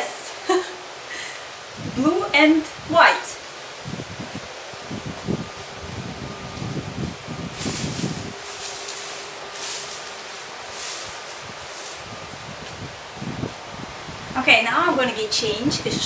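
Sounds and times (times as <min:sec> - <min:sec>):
wind gusts hissing through leaves: 0:00.0 - 0:16.0
wind rumbling on microphone: 0:01.6 - 0:16.0.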